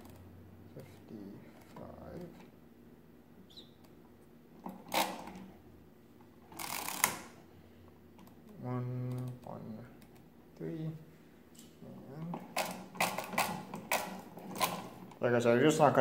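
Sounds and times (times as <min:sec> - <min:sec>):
levers clicking through notches: 0:04.6 - 0:05.5, 0:12.2 - 0:15.2
mechanism scraping rattle: 0:04.6 - 0:05.5, 0:06.4 - 0:07.4, 0:11.8 - 0:15.3.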